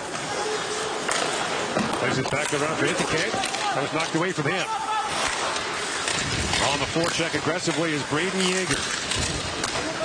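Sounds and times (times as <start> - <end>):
skates scraping on ice: 0.0 - 10.0.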